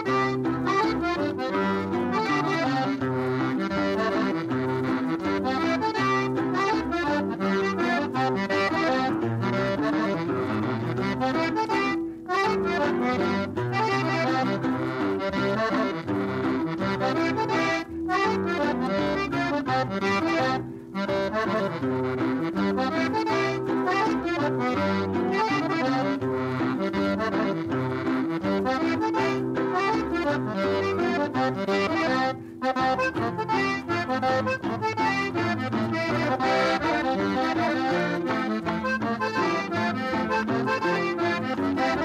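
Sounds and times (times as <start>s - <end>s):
accordion melody: 0.0s - 42.0s.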